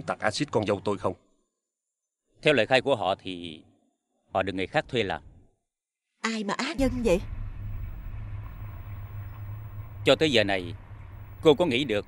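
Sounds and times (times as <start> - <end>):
low background hum: 6.8 - 12.0.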